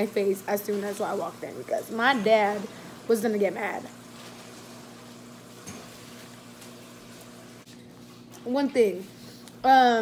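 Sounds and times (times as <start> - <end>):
low room hum with hiss: 0.0 - 10.0.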